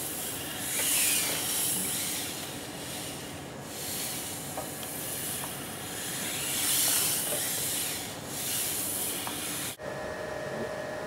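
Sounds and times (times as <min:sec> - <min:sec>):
robot actuators whirring: 0:00.0 - 0:09.8.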